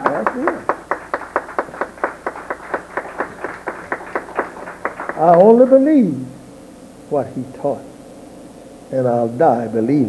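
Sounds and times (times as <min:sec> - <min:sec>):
hand clapping: 0:00.0 - 0:05.5.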